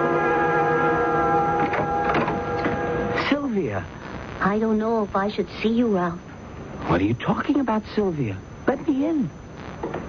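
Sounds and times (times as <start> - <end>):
music bridge held chord: 0.0 - 3.3.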